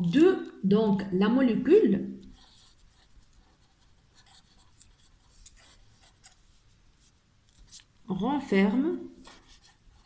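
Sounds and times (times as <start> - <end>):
marker pen scratching on paper: 2.2 - 10.0.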